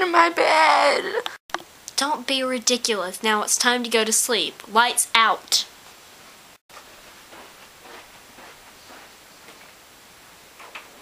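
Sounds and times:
footsteps: 0:05.8 - 0:09.8.

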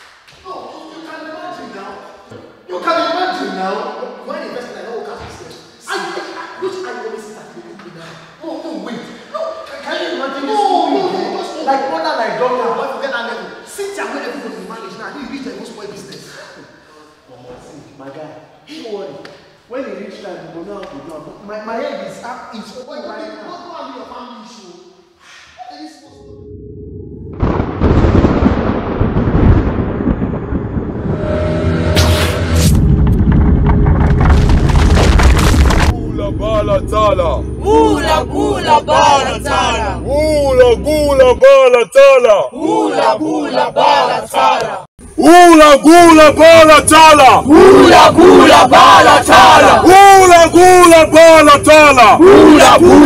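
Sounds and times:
thunder rumble and crash: 0:26.9 - 0:41.4
voices chanting in unison: 0:37.6 - 0:41.4, 0:42.0 - 0:44.9, 0:46.5 - 0:53.0.

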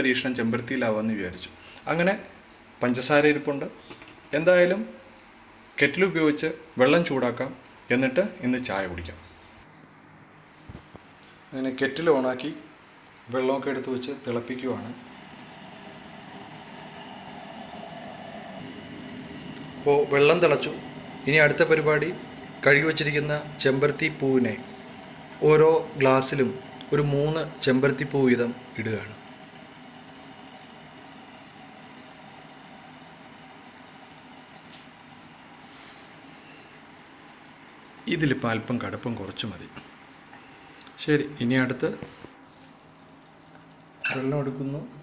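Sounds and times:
faint background hiss: 0:00.0 - 0:45.0
cricket chirping: 0:00.2 - 0:45.0
man speaking: 0:13.3 - 0:15.0, 0:19.8 - 0:24.8, 0:25.4 - 0:29.2
kettle boiling water: 0:13.7 - 0:36.4.

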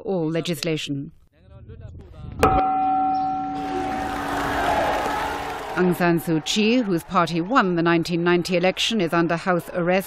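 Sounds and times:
bell ringing: 0:02.5 - 0:07.2.

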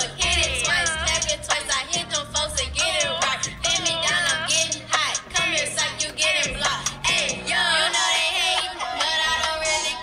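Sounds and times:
backing track music: 0:00.0 - 0:10.0
girl singing: 0:00.0 - 0:10.0.

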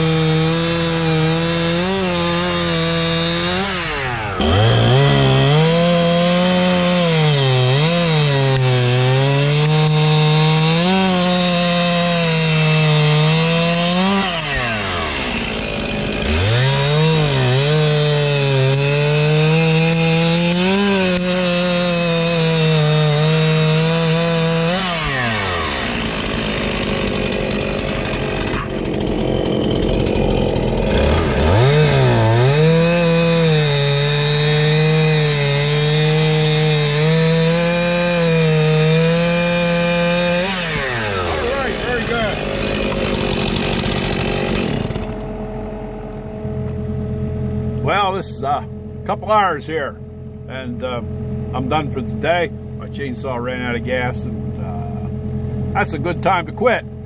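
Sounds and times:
chainsaw cutting log: 0:00.0 - 0:49.6, 0:50.5 - 0:57.0.

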